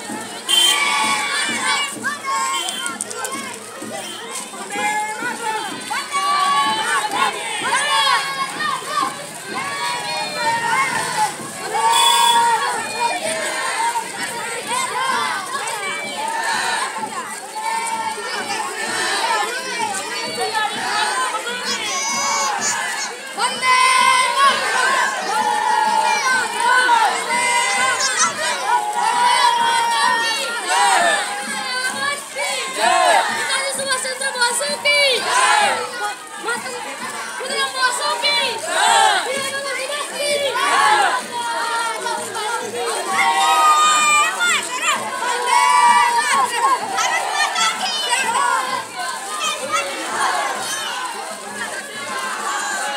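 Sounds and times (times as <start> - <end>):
children shouting slogans: 0.0 - 52.9
long drawn-out call: 11.8 - 12.6.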